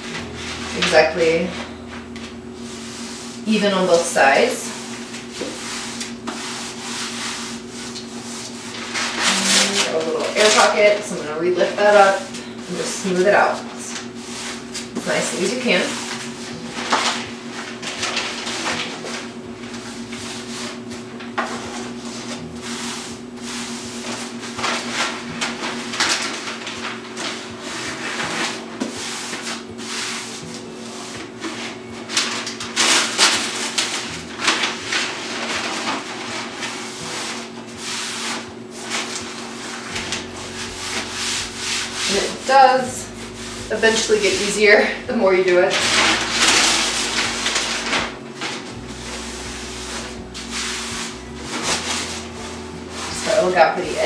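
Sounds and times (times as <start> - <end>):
hand rubbing wallpaper: 0.0 - 54.0
steady low hum: 0.0 - 54.0.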